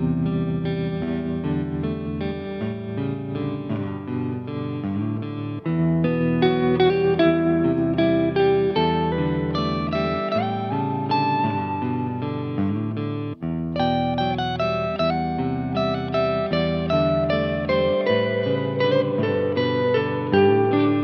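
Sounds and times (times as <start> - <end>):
clean electric guitar picking: 0.0 - 21.0.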